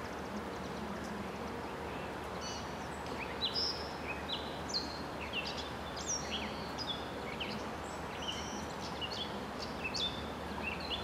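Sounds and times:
outdoor ambient hiss: 0:00.0 - 0:11.0
songbirds chirping and whistling: 0:00.0 - 0:11.0.

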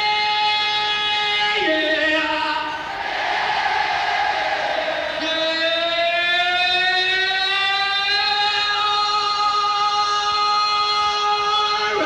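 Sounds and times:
concert crowd noise: 0:00.0 - 0:12.0.

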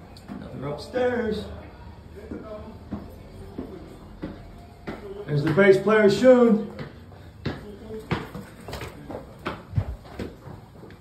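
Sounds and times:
footsteps on hard floor: 0:02.2 - 0:05.9, 0:06.5 - 0:11.0.

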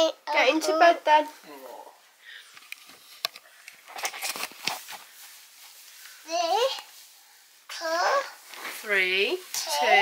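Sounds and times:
bedding rustling: 0:02.9 - 0:10.0.

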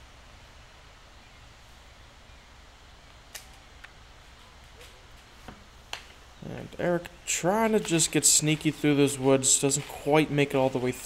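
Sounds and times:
woodland background: 0:00.0 - 0:11.0.

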